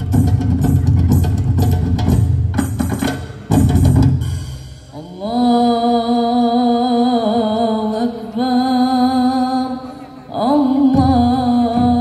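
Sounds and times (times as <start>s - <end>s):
drums in fast rhythm: 0.0s - 5.0s, 10.9s - 12.0s.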